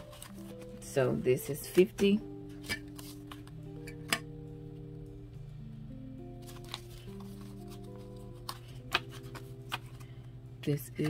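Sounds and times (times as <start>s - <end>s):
paper banknotes rustling: 0.0s - 0.9s, 6.4s - 10.2s
soft instrumental music: 0.0s - 11.0s.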